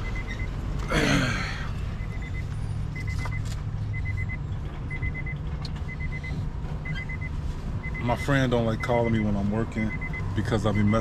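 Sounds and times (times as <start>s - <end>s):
car warning chime beeping: 0.0s - 0.7s, 1.8s - 11.0s.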